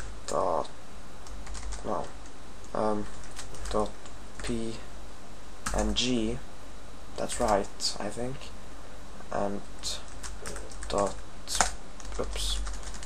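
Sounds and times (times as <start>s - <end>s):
computer keyboard typing: 0.0s - 2.2s, 3.0s - 4.5s, 9.9s - 13.0s.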